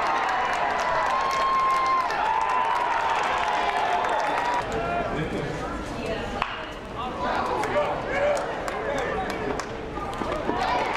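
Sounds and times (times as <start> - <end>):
crowd chatter: 3.0 - 10.9.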